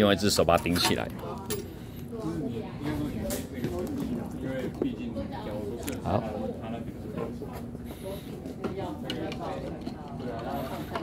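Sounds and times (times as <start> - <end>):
voices talking quietly: 0.0 - 11.0.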